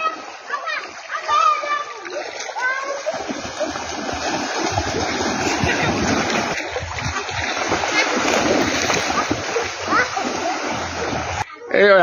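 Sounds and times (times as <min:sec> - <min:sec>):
splashing through floodwater: 0:00.0 - 0:11.5.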